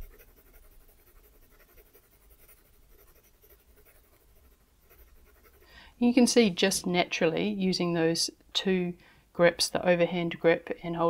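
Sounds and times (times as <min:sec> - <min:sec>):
pencil scratching on paper: 0:00.0 - 0:05.7.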